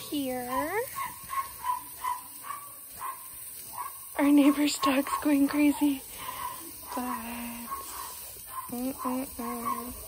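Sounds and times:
dog yipping and barking: 0.5s - 10.0s.

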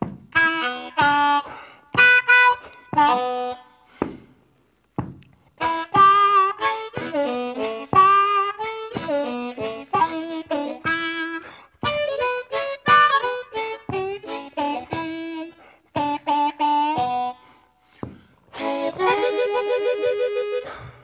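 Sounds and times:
blues harmonica solo: 0.1s - 4.4s, 5.4s - 21.0s.

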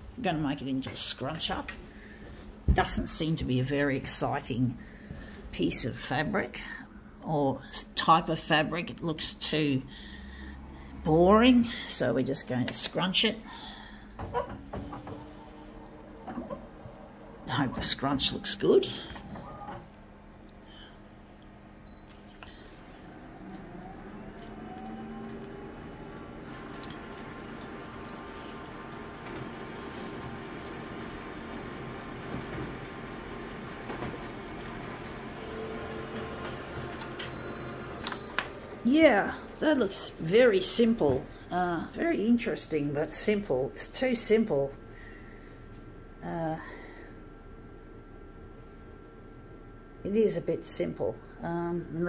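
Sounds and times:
faint steady hum: 0.0s - 52.0s
photocopier mechanical whir: 12.7s - 41.9s
photocopier clicks: 36.1s - 38.8s.

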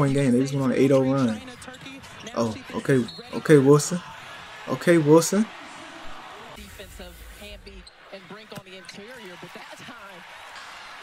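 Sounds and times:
commentator talking: 0.0s - 4.1s, 4.7s - 5.6s, 6.6s - 10.2s
arena noise: 0.0s - 11.0s.

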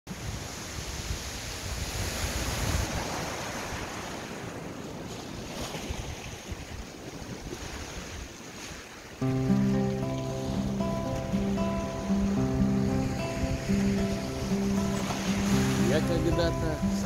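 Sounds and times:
sea surf washing over rocks: 0.1s - 17.0s
wind buffeting microphone: 0.1s - 17.0s.

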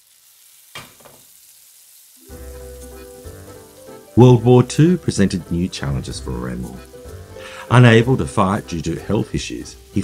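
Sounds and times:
bacon sizzling: 0.0s - 10.0s
sharp pop of frying fat: 0.7s - 1.3s
music with held notes: 2.2s - 10.0s.

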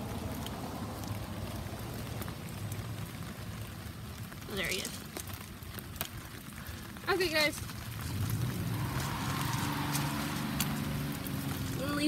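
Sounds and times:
rain falling on gravel: 0.0s - 12.0s.

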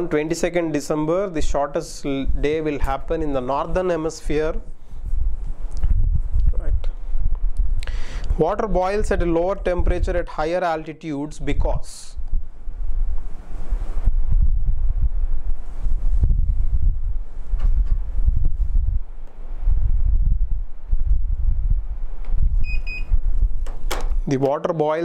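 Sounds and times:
wind buffeting a microphone: 3.7s - 10.4s, 11.4s - 24.2s.

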